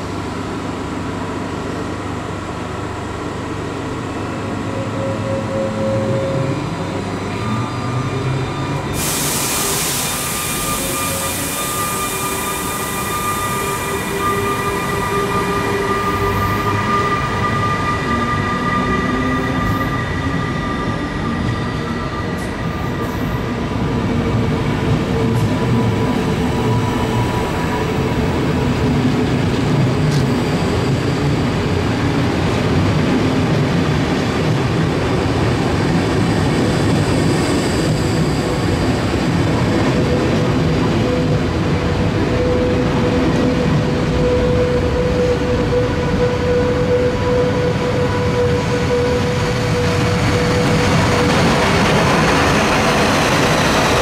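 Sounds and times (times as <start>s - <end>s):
electric locomotive pulling train: 0.0s - 54.0s
squealing train wheels: 4.2s - 33.1s, 34.4s - 54.0s
loud hiss: 9.0s - 14.2s
train coaches rolling: 34.6s - 54.0s.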